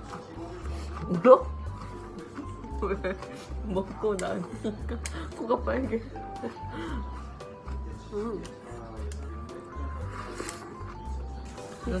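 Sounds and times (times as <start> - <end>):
light cute background music: 0.0 - 12.0.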